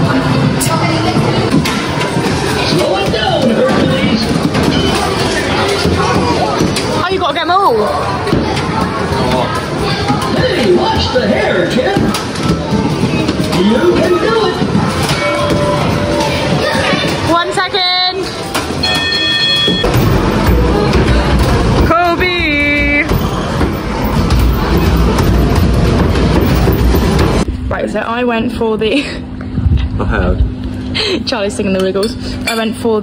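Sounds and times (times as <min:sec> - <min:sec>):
game machine noise: 0:00.1 - 0:27.5
game machine electronic beep: 0:18.8 - 0:20.0.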